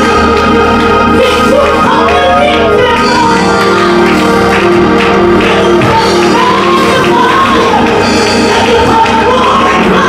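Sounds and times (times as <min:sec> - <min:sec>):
band accompaniment: 0:00.0 - 0:10.0.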